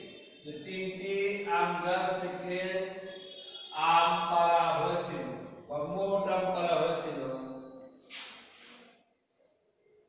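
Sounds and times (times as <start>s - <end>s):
man speaking in sing-song way: 3.7s - 7.5s.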